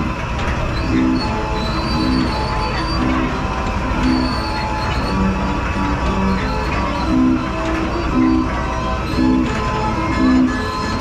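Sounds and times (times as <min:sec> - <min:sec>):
carousel ride music: 0:00.0 - 0:11.0
machinery rumble: 0:00.0 - 0:11.0.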